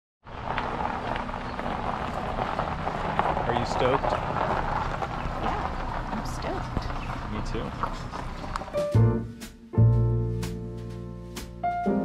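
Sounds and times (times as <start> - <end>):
low rumble: 0.3 - 10.4.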